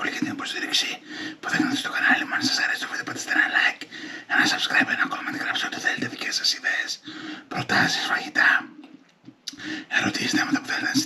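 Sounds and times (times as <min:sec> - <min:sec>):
man talking softly: 0:00.0 - 0:08.7, 0:09.9 - 0:11.0.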